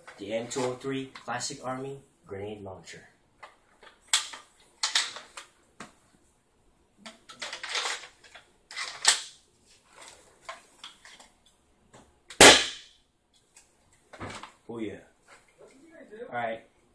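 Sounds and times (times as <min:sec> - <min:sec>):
sharp snap: 0:12.3 - 0:12.9.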